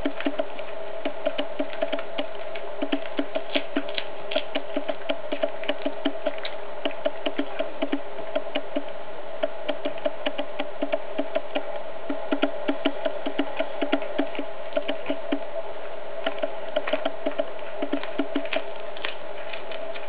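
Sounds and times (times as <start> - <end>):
steady buzzing hum: 0.0 - 20.0.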